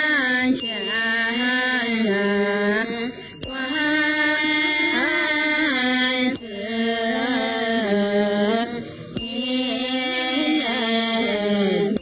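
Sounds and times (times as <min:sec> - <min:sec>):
women chanting in unison: 0:00.0 - 0:12.0
metallic strikes ringing: 0:03.4 - 0:04.6, 0:09.2 - 0:10.4.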